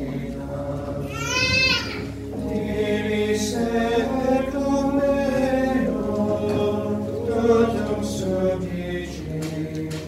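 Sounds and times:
group singing chant: 0.0s - 10.0s.

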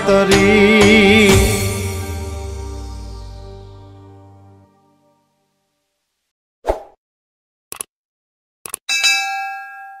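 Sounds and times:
notification bell ding: 8.9s - 10.0s.

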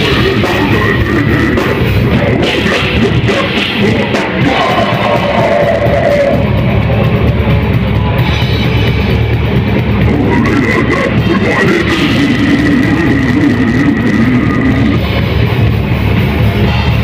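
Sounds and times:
distorted guitars: 0.0s - 17.0s
pounding drum kit: 0.0s - 17.0s.

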